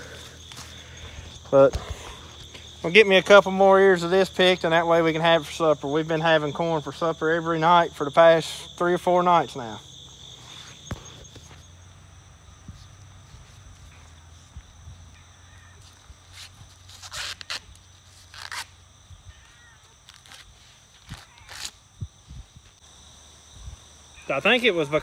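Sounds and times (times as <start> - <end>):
crickets chirping: 0.0 - 25.0
corn husk tearing: 16.4 - 18.8, 20.0 - 21.8.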